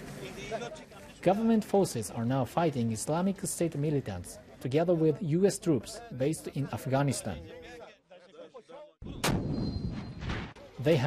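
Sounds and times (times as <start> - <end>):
faint men's voices: 0.0 - 7.9
artillery blast: 9.1 - 10.6.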